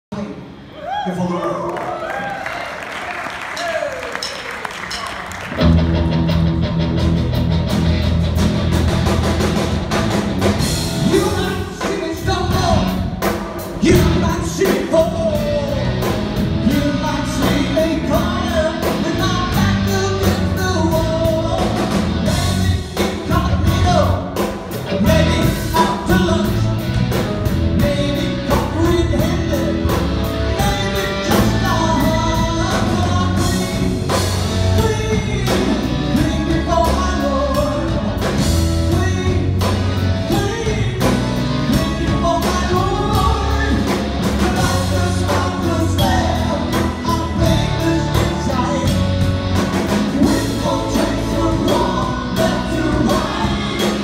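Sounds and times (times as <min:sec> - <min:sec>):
drums: 0:02.2 - 0:54.0
keyboards: 0:03.4 - 0:54.0
bass guitar: 0:04.9 - 0:54.0
electric guitar: 0:04.9 - 0:54.0
man singing: 0:11.0 - 0:13.2, 0:13.8 - 0:54.0.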